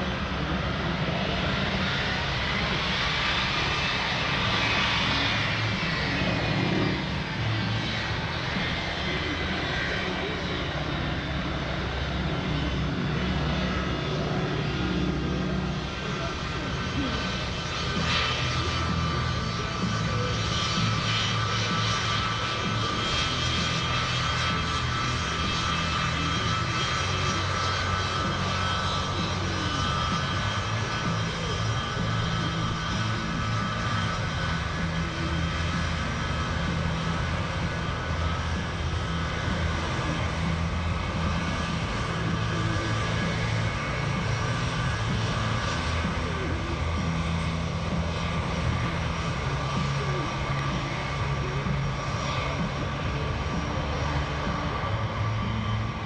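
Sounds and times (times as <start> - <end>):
jet engines rumbling and whining: 0.0 - 56.0.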